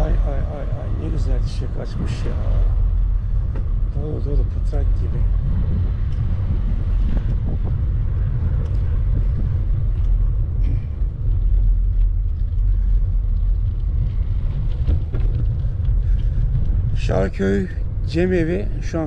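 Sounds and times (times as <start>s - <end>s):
wind buffeting microphone: 0.0s - 19.0s
tyres rolling over gravel: 7.4s - 19.0s.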